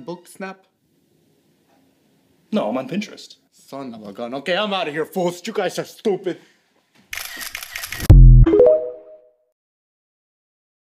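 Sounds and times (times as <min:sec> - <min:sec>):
deep bass hit: 0:08.1 - 0:08.5
synth tones stepping upward: 0:08.1 - 0:09.2.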